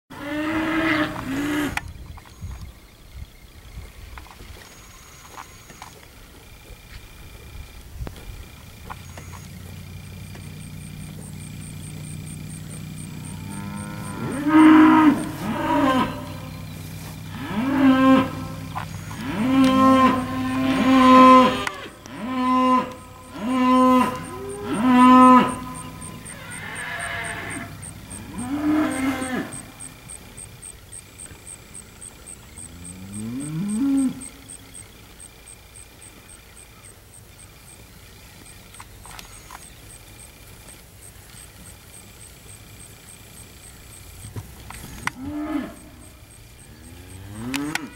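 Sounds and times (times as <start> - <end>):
steers mooing: 0.1 - 1.8, 8.6 - 31.3, 32.0 - 34.8, 43.1 - 47.9.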